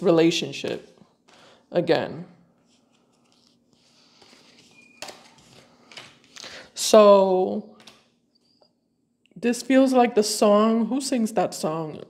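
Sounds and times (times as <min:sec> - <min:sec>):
cards rustling and sliding: 0:02.6 - 0:06.4.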